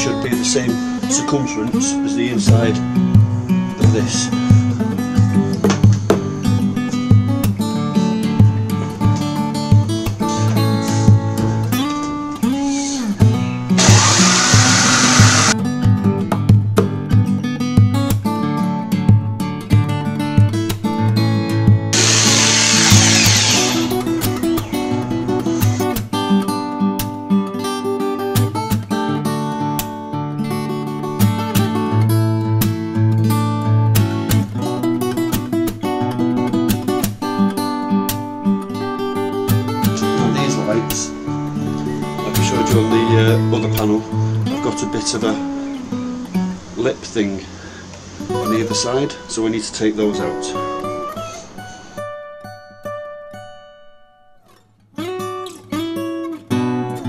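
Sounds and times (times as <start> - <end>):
acoustic guitar music: 0.0 - 57.0
jigsaw cutting plywood: 13.8 - 15.6, 22.0 - 24.1.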